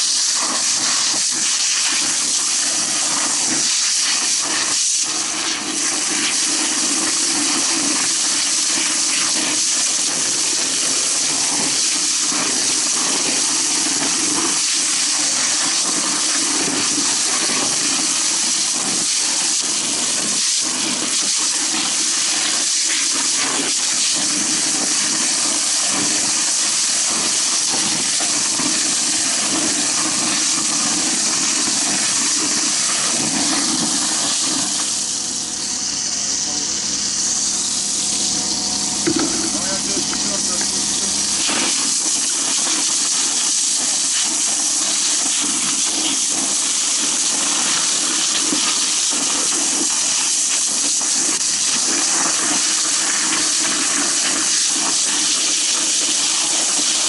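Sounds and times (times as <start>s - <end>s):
fire hose spraying water: 0.0s - 57.0s.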